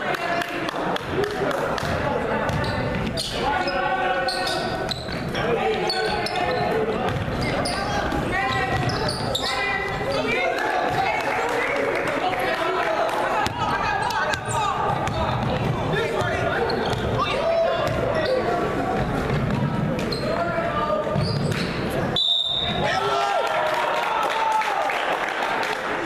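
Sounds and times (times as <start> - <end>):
echoing voices in hall: 0.0 - 26.0.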